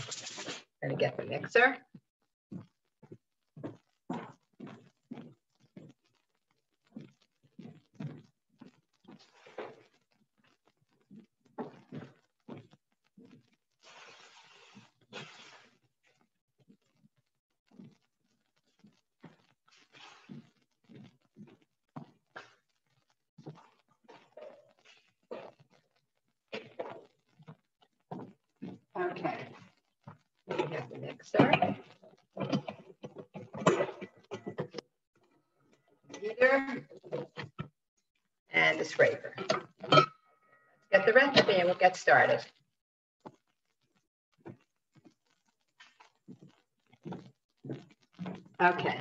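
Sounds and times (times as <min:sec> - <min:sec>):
person speaking: 0:30.5 - 0:31.8, 0:38.5 - 0:39.5.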